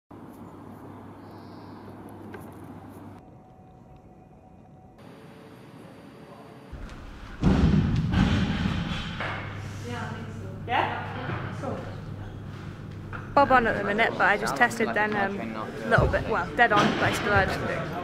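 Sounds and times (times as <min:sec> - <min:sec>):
low hum: 0:00.2 - 0:14.4
loud thud: 0:06.8 - 0:09.8.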